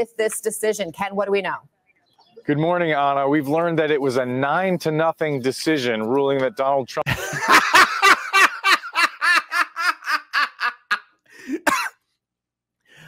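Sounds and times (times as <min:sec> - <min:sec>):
man laughing hard: 0:07.1 - 0:11.9.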